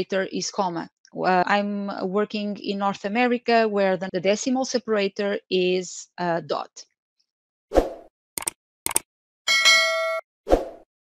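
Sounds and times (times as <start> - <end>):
quick clicks: 8.4 - 9.1
bell-like ding: 9.5 - 10.2.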